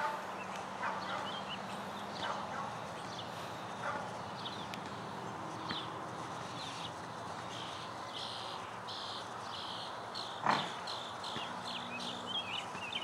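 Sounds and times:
small birds chirping: 0:00.3 - 0:13.0.

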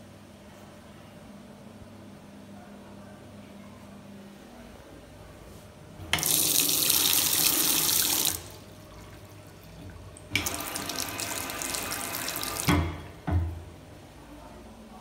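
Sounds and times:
water running into basin: 0:06.1 - 0:13.2.

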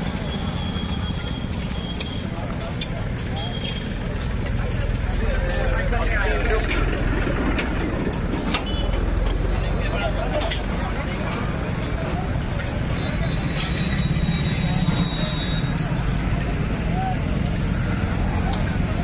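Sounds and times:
people talking: 0:00.0 - 0:19.0.

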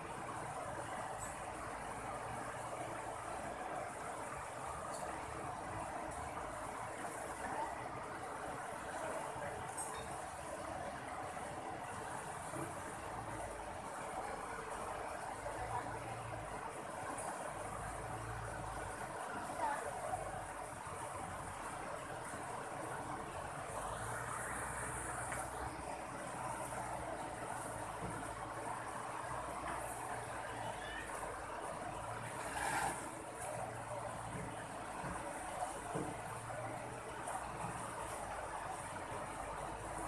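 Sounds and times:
river water rushing over rocks: 0:00.0 - 0:40.0.

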